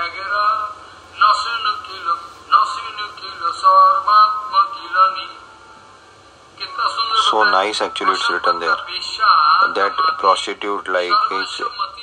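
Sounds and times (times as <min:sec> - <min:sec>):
man reciting in sing-song chant: 0:00.0 - 0:05.4, 0:06.6 - 0:12.0.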